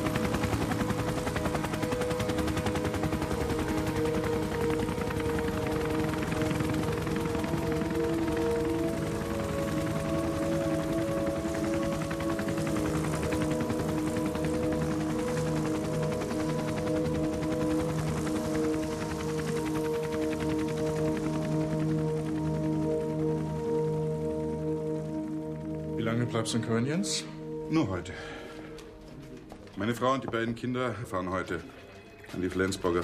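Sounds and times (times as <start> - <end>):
helicopter rotor chopping: 0.0 - 24.9
music of long held notes: 0.0 - 33.0.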